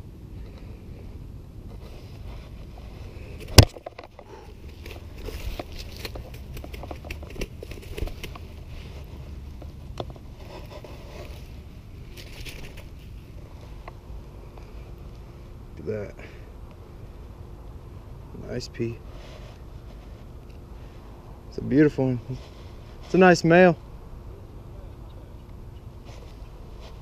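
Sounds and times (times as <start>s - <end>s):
rustling handling noise: 1.6s - 15.3s, 19.0s - 21.2s, 26.0s - 27.0s.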